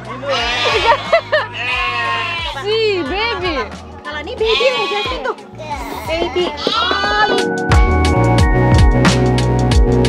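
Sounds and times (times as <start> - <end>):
goats bleating: 0.1 - 2.7, 4.4 - 7.4.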